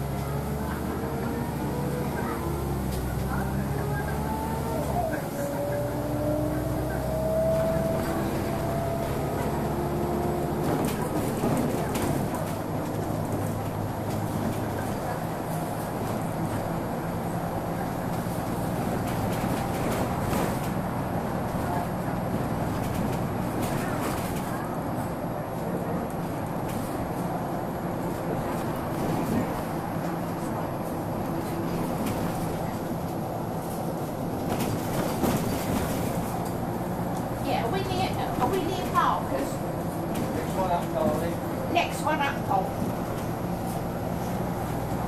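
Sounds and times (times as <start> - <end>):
bus diesel engine running: 0.0 - 45.0
road noise: 0.0 - 45.0.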